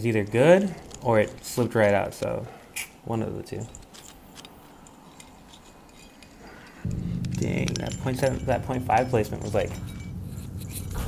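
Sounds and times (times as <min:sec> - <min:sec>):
metallic clinks of climbing gear: 0:00.0 - 0:11.0.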